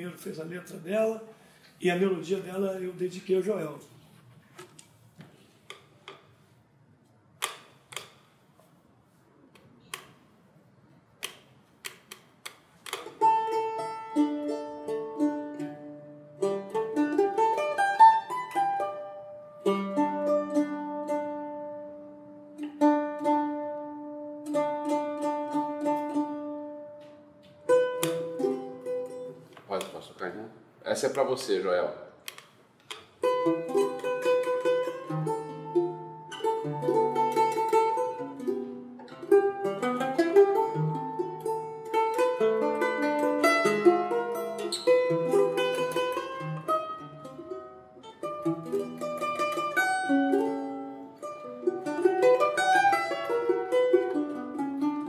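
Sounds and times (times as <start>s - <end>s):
mandolin playing solo: 11.5s - 29.9s, 32.3s - 55.0s.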